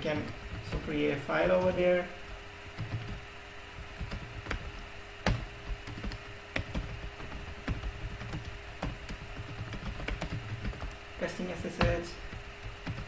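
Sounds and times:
computer keyboard typing: 0.0 - 3.2, 3.8 - 13.0
faint steady hum: 0.0 - 13.0.

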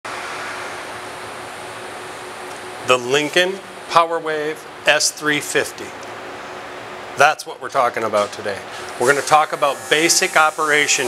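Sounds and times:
ventilation fan noise: 0.0 - 11.0
faint constant hum: 0.1 - 11.0.

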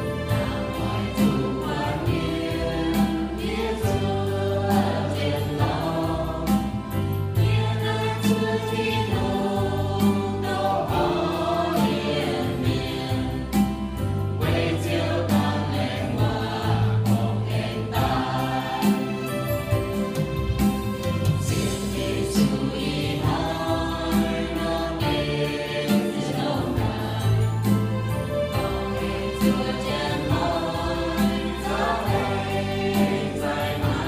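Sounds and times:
mixed choir singing: 0.0 - 34.0.

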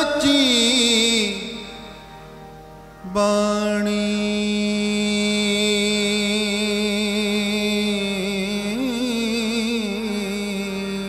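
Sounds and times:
harmonium held note: 0.0 - 11.0.

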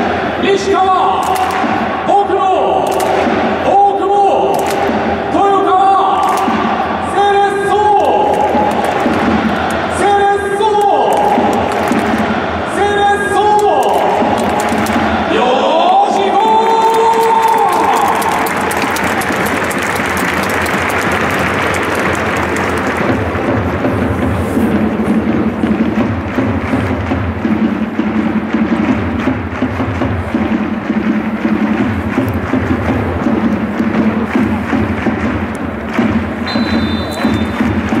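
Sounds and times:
rhythmic drum beat: 0.0 - 38.0
stadium crowd applauding: 4.3 - 5.0, 6.1 - 27.1, 31.3 - 38.0.

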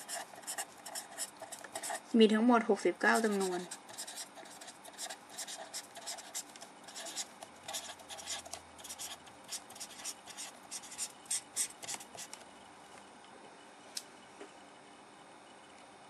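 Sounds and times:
marker writing on paper: 0.0 - 2.1, 3.1 - 12.4.

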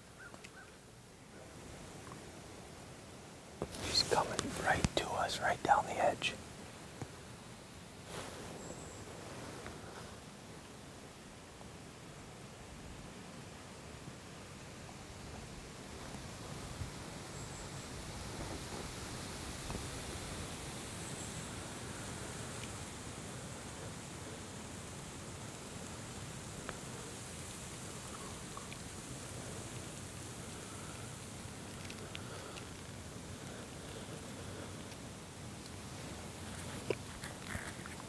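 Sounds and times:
breeze rustling grass and leaves: 0.0 - 38.0
faint ticks: 0.2 - 0.7, 3.6 - 5.0, 22.0 - 22.9, 26.5 - 35.8.

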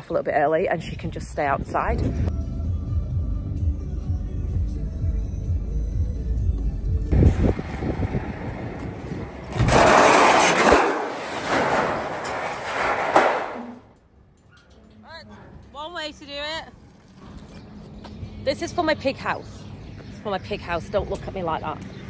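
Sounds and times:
tin sheets clattering onto concrete: 9.6 - 13.8.

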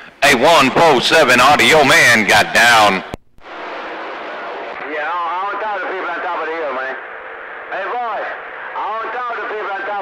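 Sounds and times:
radio static hiss: 1.6 - 10.0.

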